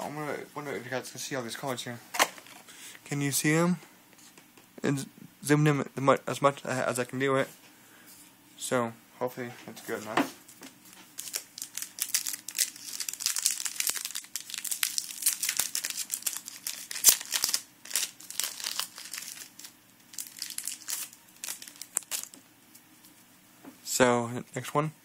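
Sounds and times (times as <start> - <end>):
trading cards being handled: 9.9 - 23.2
foil wrapper crinkling: 10.9 - 22.4.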